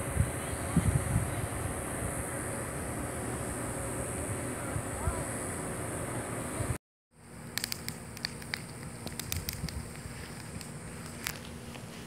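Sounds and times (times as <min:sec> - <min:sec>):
wood fire crackling and popping: 0:07.5 - 0:11.5.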